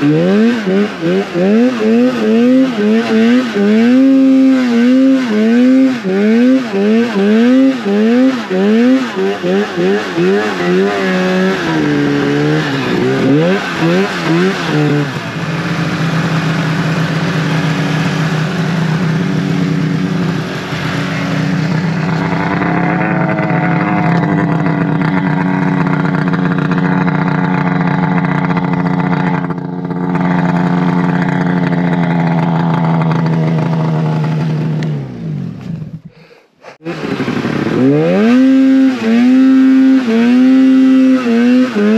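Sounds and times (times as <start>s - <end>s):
snowmobile engine running: 0.0s - 41.9s.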